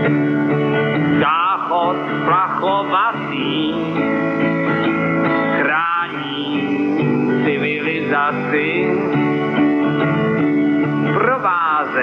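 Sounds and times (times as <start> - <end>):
person singing: 0.0 - 12.0
strummed guitar chords: 0.0 - 12.0.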